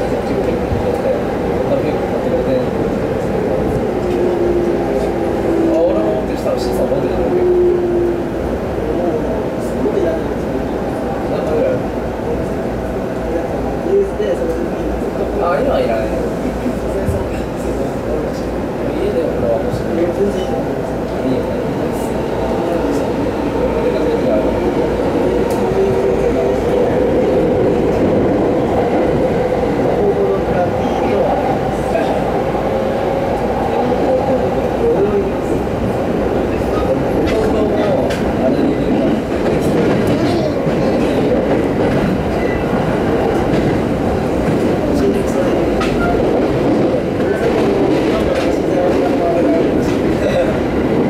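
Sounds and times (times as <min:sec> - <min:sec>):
train wheels rumbling on rails: 0:00.0 - 0:51.0
rail joint clicks: 0:24.8 - 0:28.4, 0:36.4 - 0:50.6.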